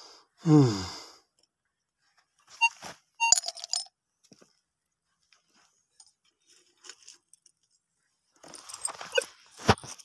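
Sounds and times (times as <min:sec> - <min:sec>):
metal pot and coins clinking: 0:03.2 - 0:03.9.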